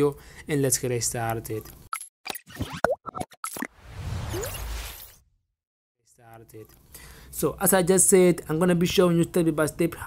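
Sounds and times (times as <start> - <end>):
cartoon pops and plops: 2.2 - 3.7.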